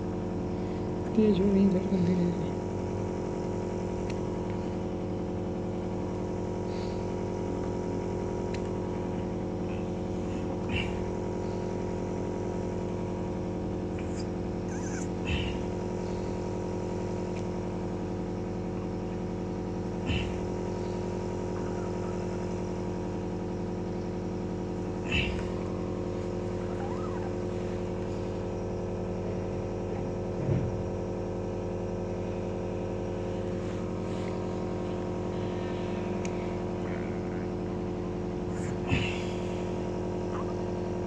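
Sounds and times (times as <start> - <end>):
mechanical hum: 0.0 - 41.0.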